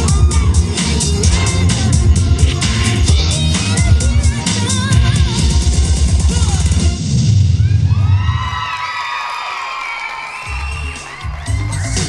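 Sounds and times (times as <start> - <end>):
audience cheering and whooping: 0.0 - 1.2, 7.5 - 12.0
dance music with heavy bass: 0.0 - 7.3, 10.5 - 12.0.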